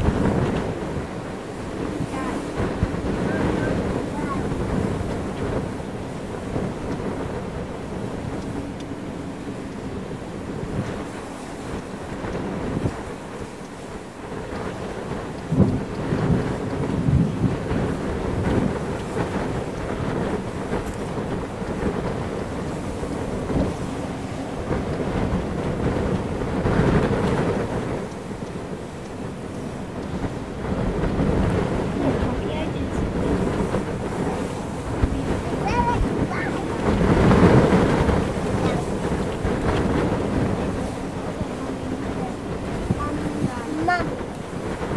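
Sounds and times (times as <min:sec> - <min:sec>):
gusty wind buffeting microphone: 0:00.0 - 0:44.9.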